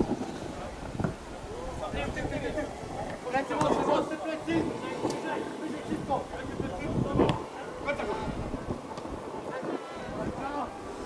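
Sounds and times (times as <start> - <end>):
men shouting outdoors: 1.5 - 10.9.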